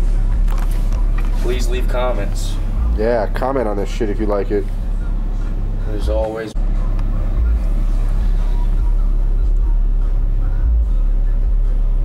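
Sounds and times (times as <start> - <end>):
deep bass from subwoofer: 0.0 - 12.0.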